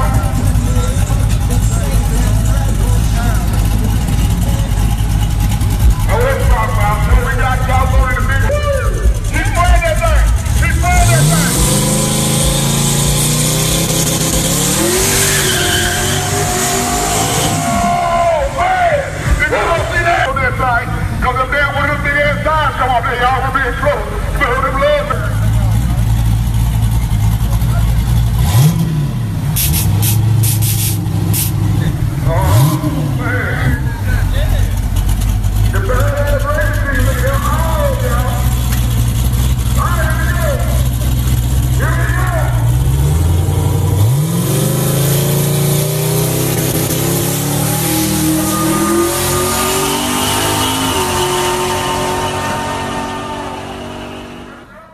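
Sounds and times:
car accelerating away: 0:00.0 - 0:22.1, 0:25.1 - 0:54.9
car engine idling and revving: 0:00.0 - 0:54.9
voices shouting: 0:05.0 - 0:11.6, 0:14.9 - 0:21.9, 0:41.8 - 0:42.6.

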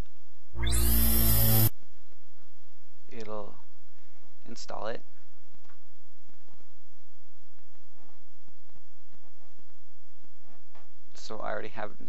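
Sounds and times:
electronic computer chime: 0:00.6 - 0:01.7.

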